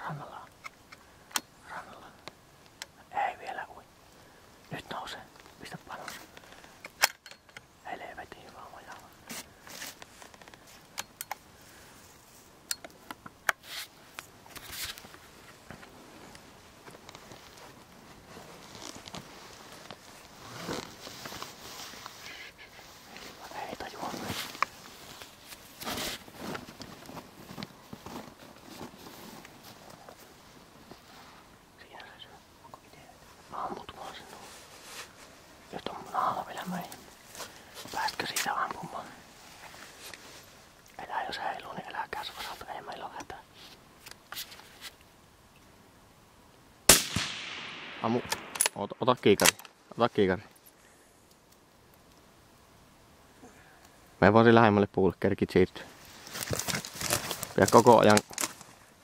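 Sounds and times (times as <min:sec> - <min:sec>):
person whispering: 0:00.0 - 0:00.6, 0:01.6 - 0:02.3, 0:03.0 - 0:03.9, 0:04.7 - 0:06.4, 0:07.8 - 0:09.2, 0:22.2 - 0:24.6, 0:31.8 - 0:34.6, 0:35.7 - 0:39.3, 0:41.0 - 0:43.5.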